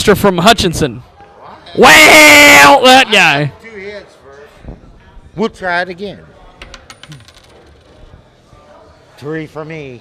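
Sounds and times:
coin clattering on table: 6.6s - 8.0s.

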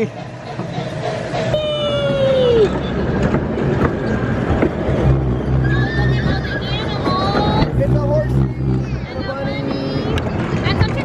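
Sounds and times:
low hum of ride: 0.0s - 11.0s.

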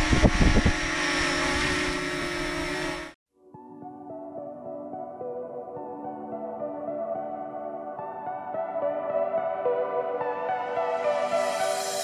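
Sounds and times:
drone propellers whining: 0.0s - 3.2s.

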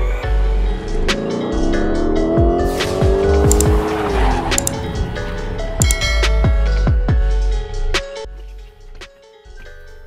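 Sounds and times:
car engine revving: 0.4s - 5.8s
sharp clicks: 3.4s - 3.8s, 4.5s - 4.9s, 5.8s - 6.1s.

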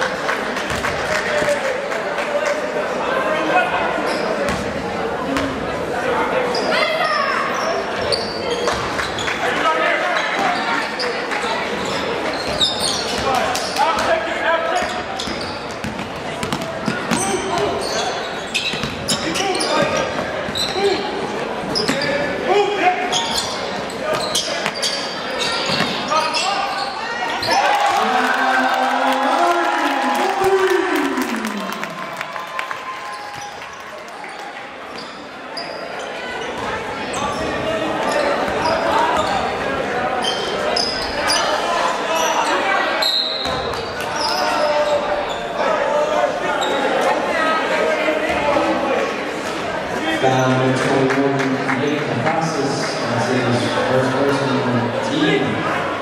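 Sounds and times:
crowd chatter and shouts: 0.0s - 56.0s.

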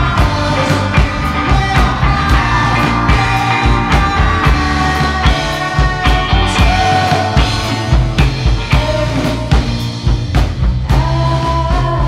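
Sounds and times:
electric guitar chords: 0.0s - 12.0s
live rock band playing: 0.0s - 12.0s.

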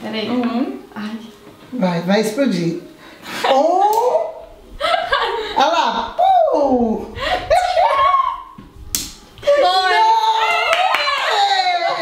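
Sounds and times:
women laughing and shrieking: 6.4s - 8.6s, 9.4s - 12.0s.

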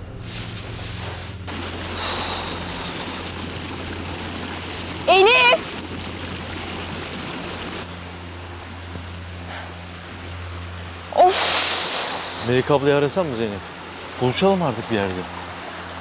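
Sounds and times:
stream running over rocks: 0.7s - 16.0s.

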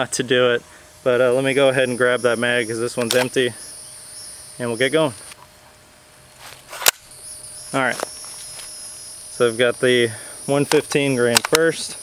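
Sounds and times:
gun handling rustle: 3.0s - 3.4s, 6.4s - 7.1s, 7.9s - 8.8s, 10.6s - 11.7s
gun magazine click: 10.7s - 11.6s.

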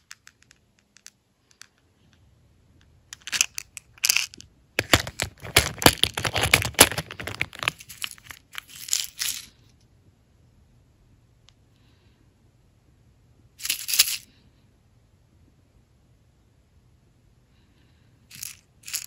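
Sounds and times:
plastic clicks and rattling: 3.2s - 9.4s.

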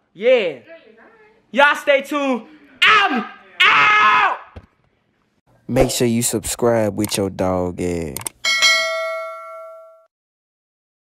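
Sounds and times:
notification bell chime: 8.5s - 10.1s.

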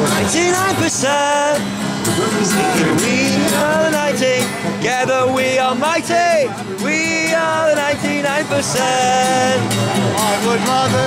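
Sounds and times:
man singing: 0.0s - 11.0s
strummed acoustic guitar: 0.0s - 11.0s.

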